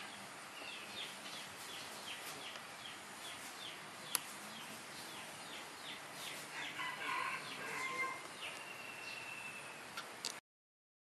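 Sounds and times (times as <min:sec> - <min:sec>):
bird chirps: 0:00.0 - 0:10.0
rooster crowing: 0:06.5 - 0:09.6.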